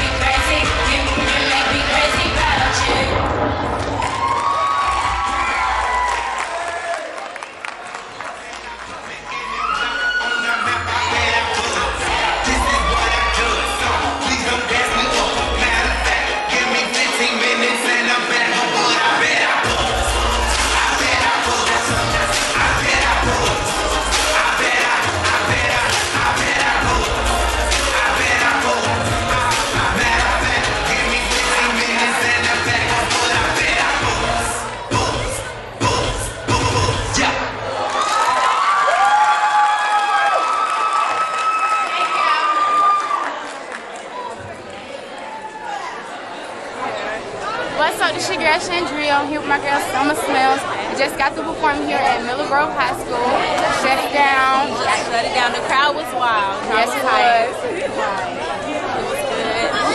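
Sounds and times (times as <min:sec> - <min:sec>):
crowd cheering and screaming: 0:00.1 - 0:35.4, 0:36.0 - 0:44.4, 0:45.2 - 0:46.1
hip-hop track with heavy bass: 0:09.1 - 0:37.6.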